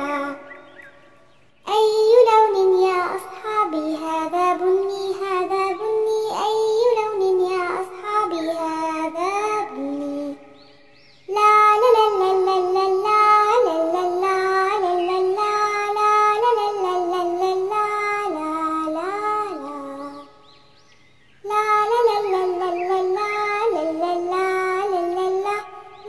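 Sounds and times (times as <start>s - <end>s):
child singing: 0.0s - 0.8s, 1.6s - 10.6s, 11.3s - 20.4s, 21.4s - 26.0s.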